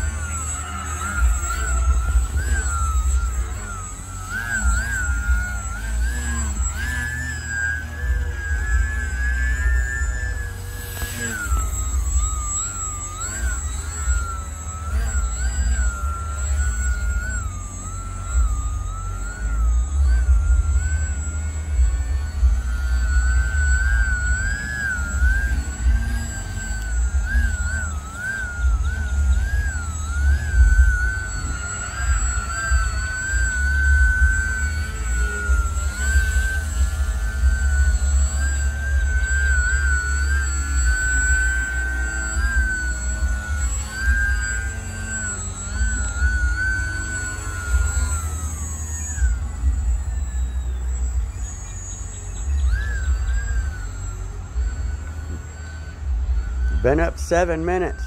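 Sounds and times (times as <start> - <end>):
low rumble: 0.0 - 58.0
model plane motor whine: 0.0 - 58.0.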